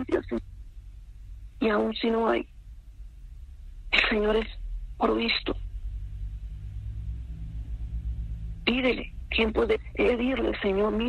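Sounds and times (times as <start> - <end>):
low steady rumble and hum: 0.0 - 11.0.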